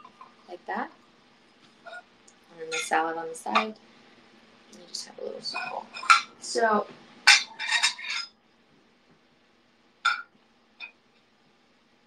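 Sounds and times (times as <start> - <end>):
ceramic dishes clinking: 2.6 - 2.9, 5.5 - 6.3, 7.3 - 8.3, 10.1 - 11.0.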